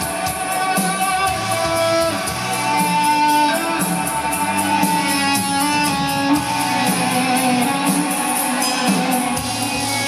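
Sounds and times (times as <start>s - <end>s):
drums: 0.0s - 10.0s
electric guitar: 0.0s - 10.0s.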